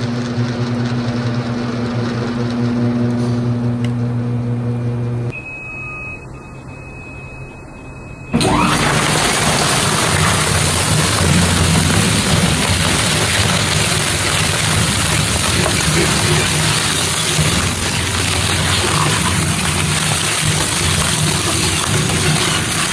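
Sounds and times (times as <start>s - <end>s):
low machine hum: 0.0s - 22.9s
shredder tearing paper: 8.4s - 22.9s.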